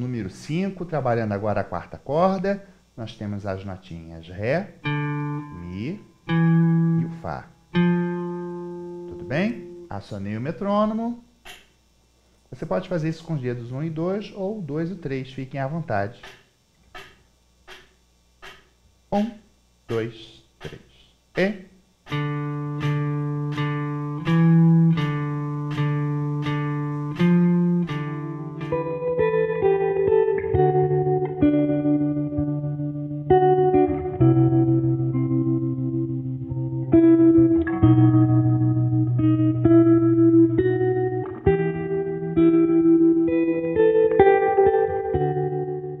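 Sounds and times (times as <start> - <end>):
electric guitar single notes: 4.5 - 11.9, 22.0 - 46.0
background music with chords: 4.8 - 10.0, 22.1 - 46.0
metronome clicking: 11.4 - 11.8, 16.2 - 18.7, 22.1 - 30.5.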